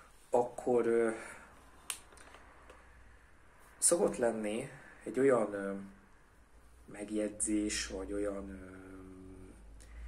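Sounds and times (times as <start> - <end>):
man speaking: 0.3 - 1.6, 3.8 - 6.0, 6.8 - 9.6.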